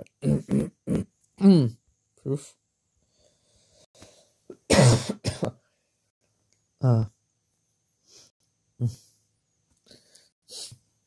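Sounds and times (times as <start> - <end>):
faint breath: 3.0 - 4.4, 8.0 - 8.3, 9.8 - 10.8
person coughing harshly: 4.5 - 5.6.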